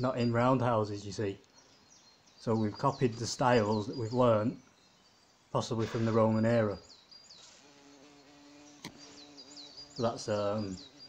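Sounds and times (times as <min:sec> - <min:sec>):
bird chirping: 0:00.0 - 0:11.0
flying insect buzzing: 0:07.3 - 0:11.0.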